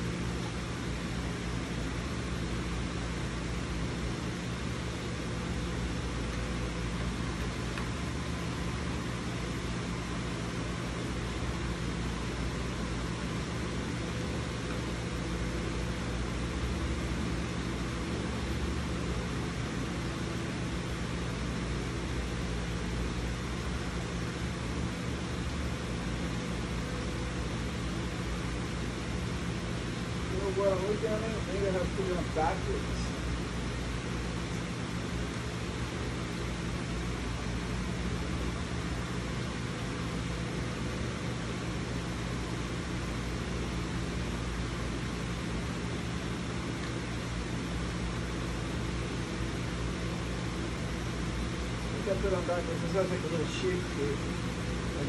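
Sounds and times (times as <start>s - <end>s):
low even hum: 0.0s - 55.0s.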